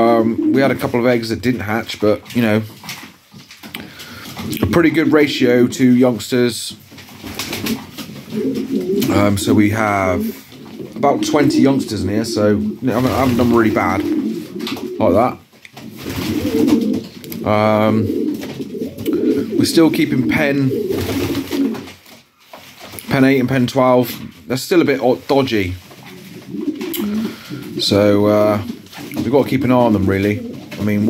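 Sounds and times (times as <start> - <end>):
pigeons cooing: 0.0 - 1.0, 8.0 - 21.9, 26.0 - 31.0.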